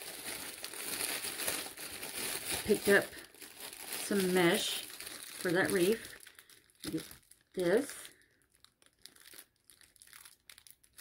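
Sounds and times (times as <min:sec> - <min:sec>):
plastic wrap crinkling: 0:00.0 - 0:11.0.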